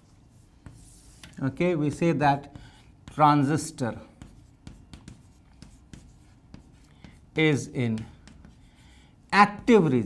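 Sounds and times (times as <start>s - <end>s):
chalk scratching: 0.0s - 10.0s
chalk taps on blackboard: 0.6s - 8.8s.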